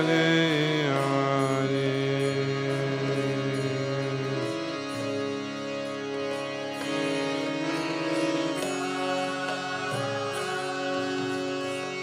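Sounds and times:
man singing a devotional chant: 0:00.0 - 0:04.7
harmonium: 0:00.0 - 0:12.0.

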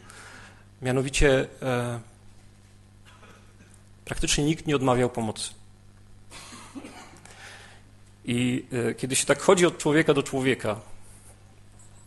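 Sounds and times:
low steady hum: 0:00.0 - 0:12.0
muffled cough: 0:03.1 - 0:03.8, 0:06.3 - 0:07.2.

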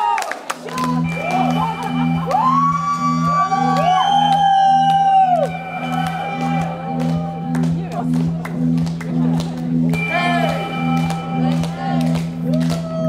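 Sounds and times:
crowd whooping and cheering: 0:00.0 - 0:07.8, 0:12.4 - 0:13.0
pulsing synth bass: 0:00.6 - 0:13.0.

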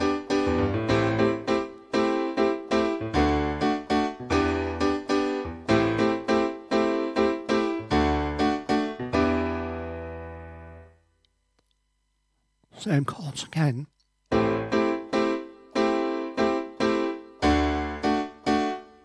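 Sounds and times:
piano playing chords: 0:00.0 - 0:11.1, 0:14.3 - 0:19.0.

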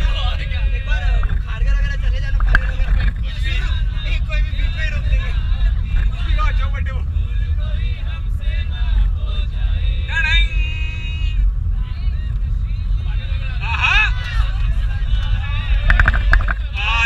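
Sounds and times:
bus engine and road rumble: 0:00.0 - 0:17.0
passengers talking: 0:00.0 - 0:17.0.

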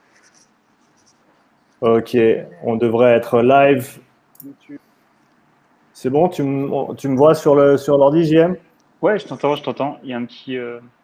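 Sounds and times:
faint scratchy sounds: 0:00.0 - 0:11.0
man speaking: 0:01.8 - 0:04.9, 0:06.0 - 0:11.0.

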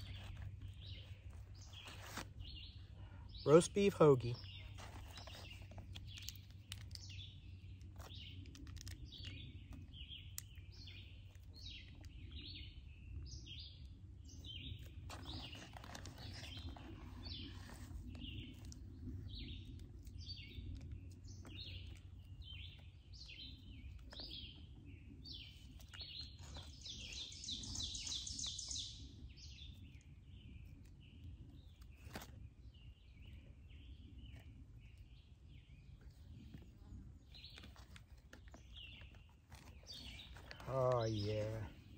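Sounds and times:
songbirds chirping: 0:00.0 - 0:41.9
paper wrapper crinkling: 0:04.7 - 0:07.0, 0:07.8 - 0:09.0, 0:15.1 - 0:18.8.

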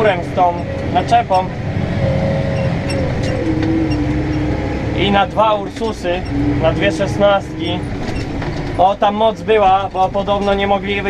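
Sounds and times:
engine whine: 0:00.0 - 0:11.0
tractor engine running under load: 0:00.0 - 0:11.0.

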